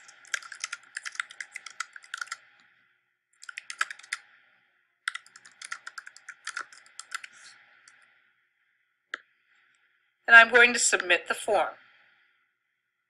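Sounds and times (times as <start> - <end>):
typing on computer keyboard: 0.0 - 2.4, 3.4 - 4.2, 5.1 - 7.4.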